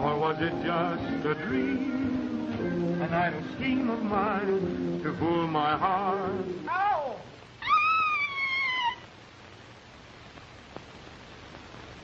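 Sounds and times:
high-pitched cry sliding down: 0:06.7 - 0:09.1.

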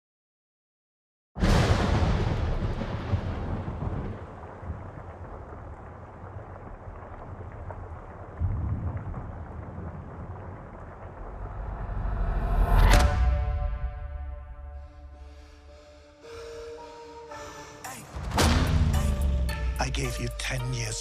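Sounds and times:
loud boom: 0:01.4 - 0:04.4, 0:08.4 - 0:15.7, 0:18.2 - 0:20.4
deep thunder-like rumble: 0:01.4 - 0:15.3.

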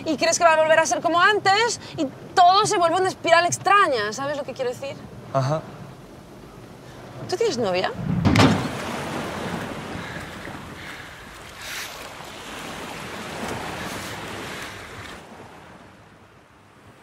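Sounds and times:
ocean surf breaking: 0:00.0 - 0:17.0
wind: 0:00.0 - 0:17.0.

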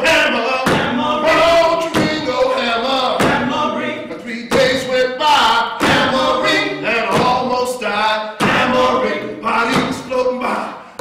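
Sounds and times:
voices singing a cappella: 0:00.0 - 0:11.0.

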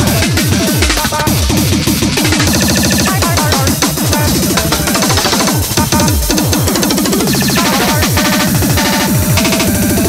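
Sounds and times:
distorted electronic track: 0:00.0 - 0:10.0
distorted kick drums: 0:00.0 - 0:10.0.

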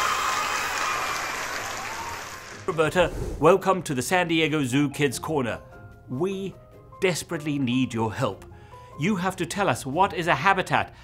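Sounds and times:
crowd applauding and cheering: 0:00.0 - 0:02.9.

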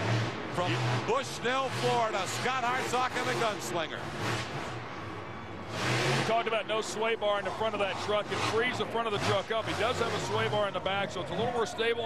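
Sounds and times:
monster truck engine running hard: 0:00.0 - 0:12.0.

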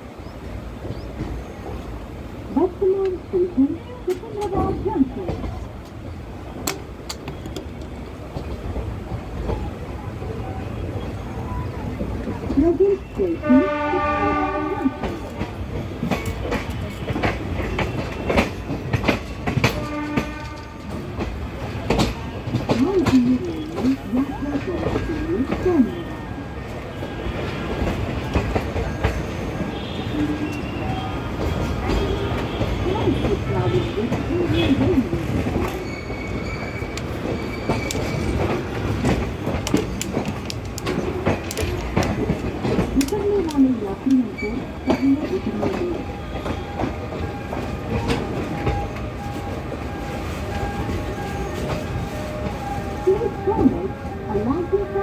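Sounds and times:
train horn: 0:13.4 - 0:15.2, 0:19.6 - 0:21.1, 0:29.7 - 0:34.9
train wheels clicking over rail joints: 0:15.0 - 0:25.9, 0:27.4 - 0:49.8
high wheel squeals: 0:35.6 - 0:38.4.

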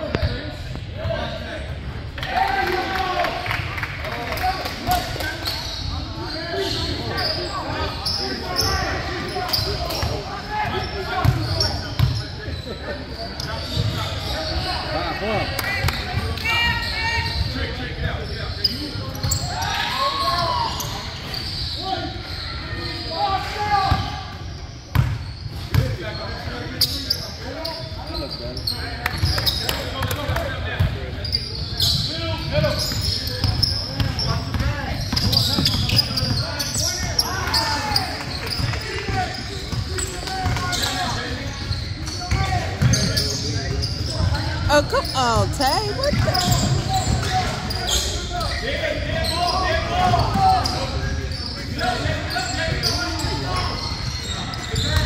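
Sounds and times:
indistinct voices: 0:44.7 - 0:46.6.

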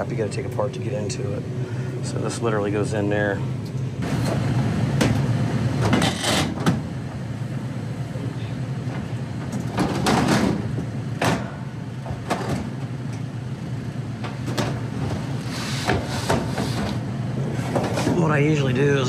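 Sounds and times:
evaporator fans humming: 0:00.0 - 0:19.0
sheet metal panels scraping: 0:15.4 - 0:17.0.

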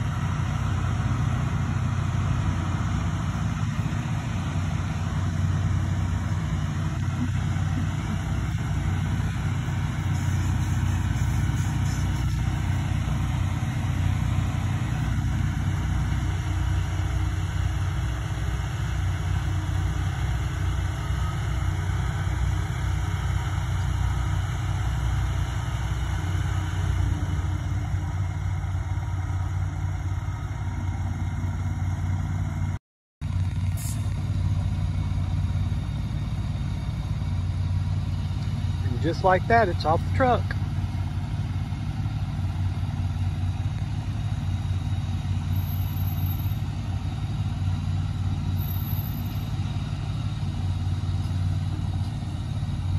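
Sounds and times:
engine droning steadily: 0:00.0 - 0:52.9.

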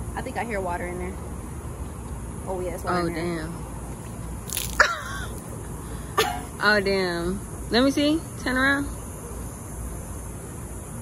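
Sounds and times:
water splash: 0:04.1 - 0:05.1.

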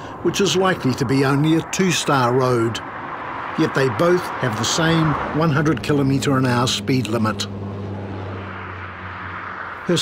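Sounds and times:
highway traffic rushing: 0:00.0 - 0:10.0.

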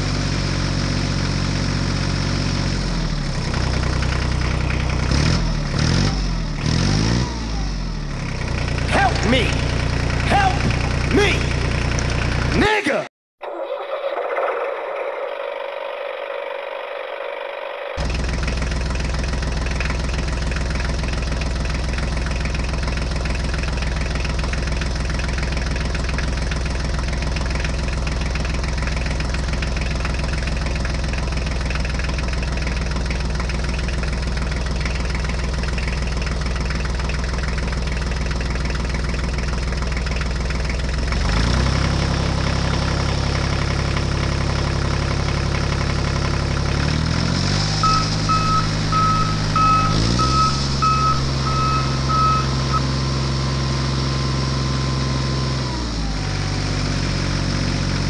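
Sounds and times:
tractor engine running: 0:00.0 - 0:12.8, 0:13.5 - 0:58.0
vehicle reversing beeper: 0:47.6 - 0:52.9.

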